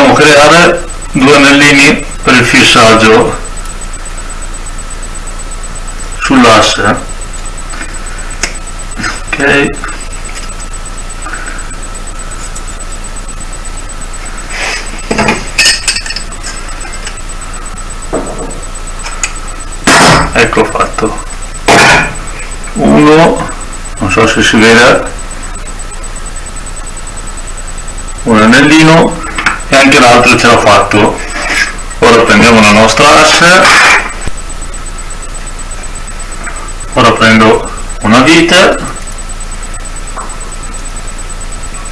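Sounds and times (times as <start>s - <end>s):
faint high whine: 0.0s - 41.9s
pliers and wire clinking and scraping: 15.1s - 16.6s.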